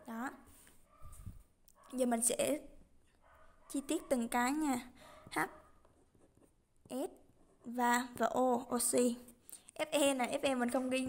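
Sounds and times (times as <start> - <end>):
ballpoint pen scratching on paper: 5.2 - 7.8.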